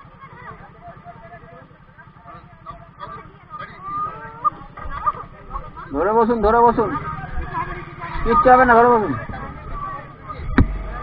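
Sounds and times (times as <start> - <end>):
motorcycle engine idling: 0.0 - 11.0
people talking: 0.0 - 11.0.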